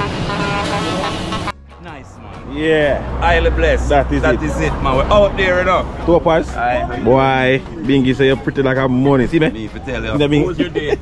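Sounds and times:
car horn toots: 0.0s - 2.2s
diesel truck engine passing: 0.0s - 11.0s
road noise: 0.0s - 11.0s.

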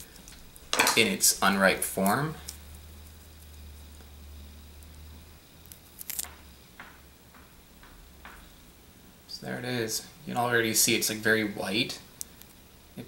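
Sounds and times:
faint low hum: 0.0s - 13.0s
fruit hull cracking: 5.6s - 6.4s.

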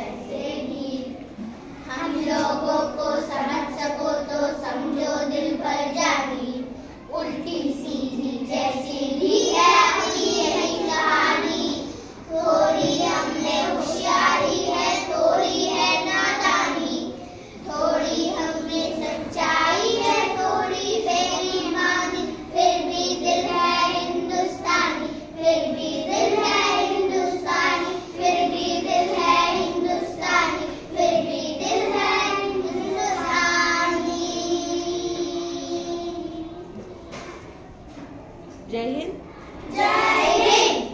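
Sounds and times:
children singing in unison: 0.0s - 36.7s, 39.6s - 40.9s.

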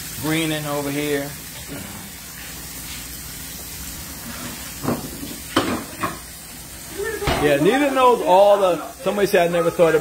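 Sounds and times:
pot simmering hiss: 0.0s - 10.0s.

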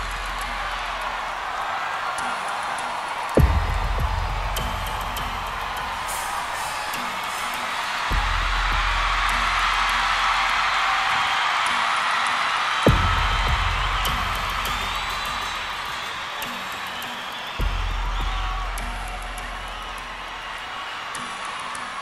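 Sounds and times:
crowd noise: 0.0s - 22.0s
deep bass hits: 12.9s - 14.7s.

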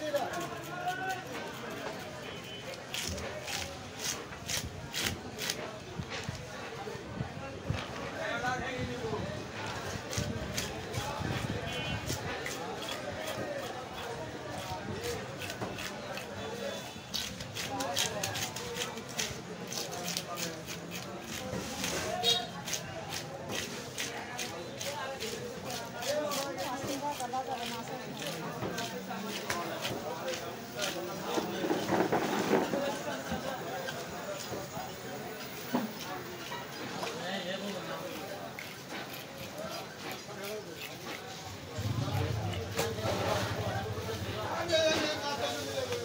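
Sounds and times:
wooden scraper scraping fish scales: 0.0s - 6.4s, 9.9s - 34.7s, 35.6s - 44.3s.

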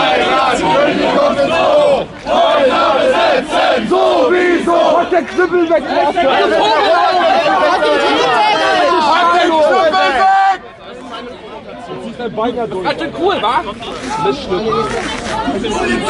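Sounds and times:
crowd shouting: 0.0s - 12.2s.

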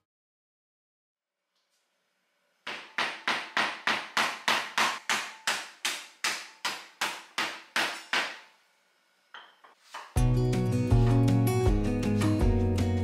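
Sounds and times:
rolling pin beating cucumbers: 2.7s - 8.5s.

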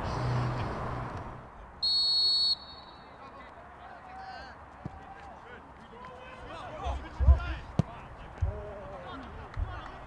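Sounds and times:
outdoor background noise: 0.0s - 10.0s
referee's whistle blast: 1.8s - 3.2s.

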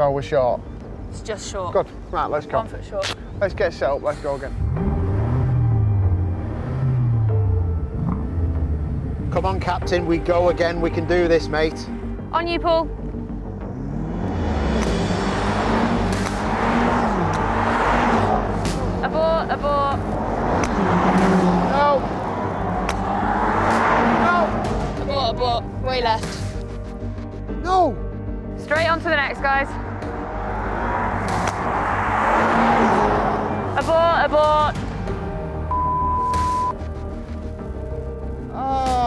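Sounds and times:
car accelerating: 3.9s - 12.3s, 12.9s - 27.3s, 28.5s - 38.6s.

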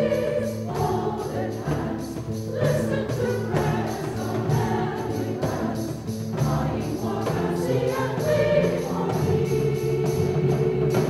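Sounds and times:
choir singing with orchestra: 0.0s - 11.0s.

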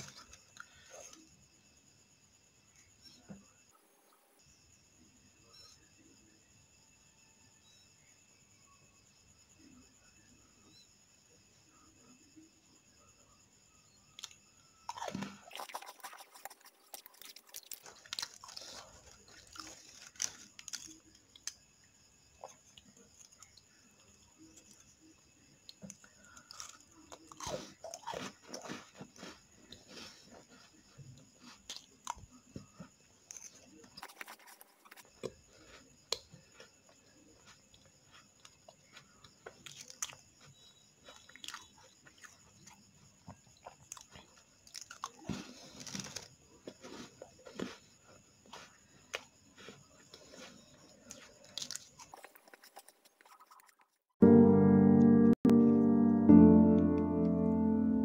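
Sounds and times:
biscuits crunching while chewed: 0.0s - 1.3s, 14.1s - 21.7s, 22.3s - 54.0s.

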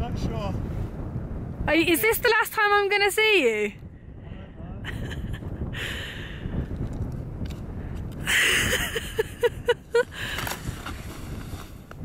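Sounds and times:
wind buffeting microphone: 0.0s - 12.0s
person laughing: 4.8s - 5.6s, 8.3s - 10.4s.

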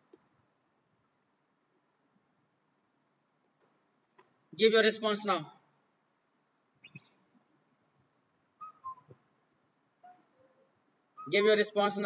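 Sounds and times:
faint whistled notes: 8.6s - 9.2s, 10.0s - 11.5s.

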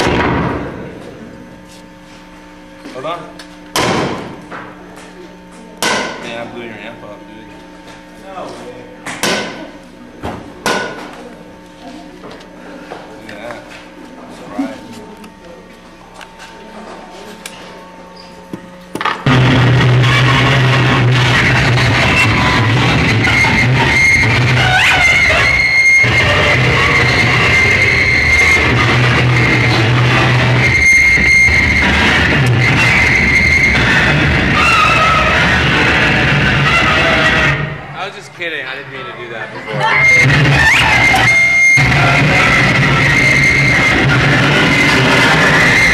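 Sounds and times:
electrical hum: 0.0s - 45.9s
low droning tone: 17.8s - 45.9s
squealing whine: 17.8s - 45.9s.

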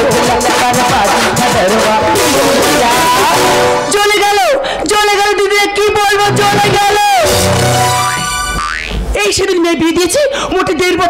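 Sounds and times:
comic sliding musical note: 2.2s - 4.0s, 6.3s - 8.8s.

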